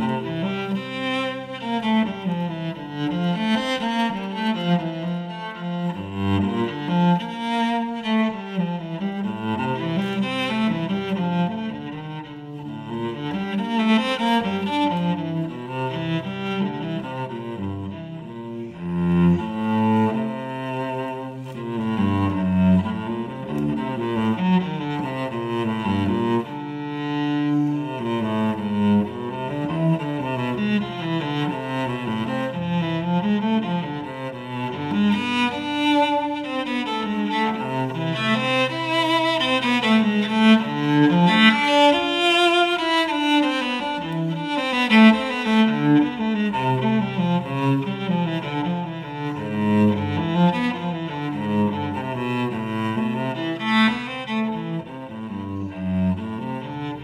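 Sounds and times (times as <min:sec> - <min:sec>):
bowed cello: 0:00.0 - 0:57.0.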